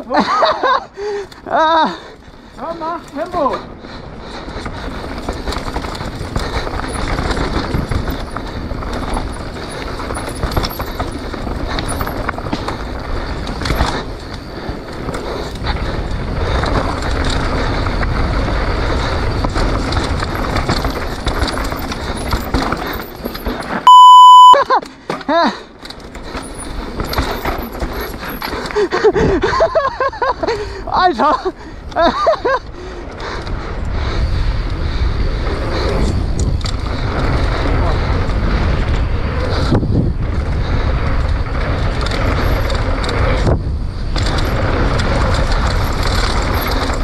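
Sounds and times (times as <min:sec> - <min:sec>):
bike tyre and trail noise: 0:00.0 - 0:47.0
bike clatter: 0:02.2 - 0:23.9, 0:24.7 - 0:30.7, 0:34.6 - 0:47.0
electronic beep: 0:23.9 - 0:24.6
wind rushing on microphone: 0:31.7 - 0:47.0.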